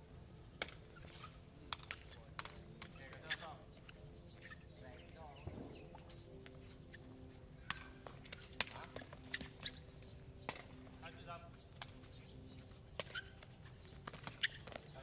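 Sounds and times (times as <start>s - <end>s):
ball being kicked cracks: 0.6s - 0.8s, 1.7s - 3.4s, 7.6s - 9.8s, 10.4s - 10.9s, 12.9s - 13.4s, 14.0s - 14.9s.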